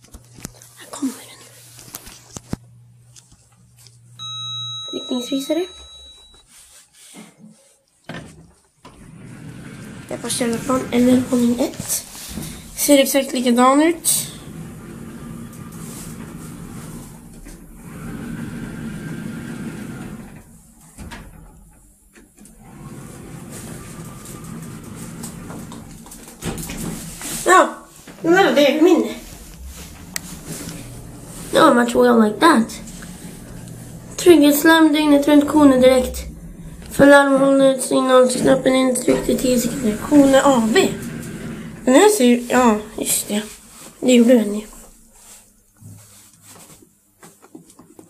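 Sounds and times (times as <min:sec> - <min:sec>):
low steady hum: 0:00.0 - 0:06.4, 0:08.8 - 0:45.8
elevator electronic ding: 0:04.2 - 0:06.4
elevator click: 0:29.2 - 0:42.0.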